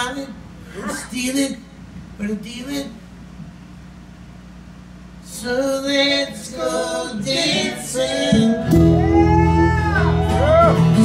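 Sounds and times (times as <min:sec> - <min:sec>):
low steady stage hum: 0:00.0 - 0:11.0.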